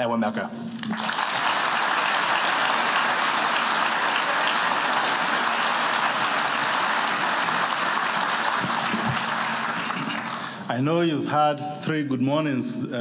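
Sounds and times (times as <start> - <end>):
audience applauding: 0.8 - 10.7.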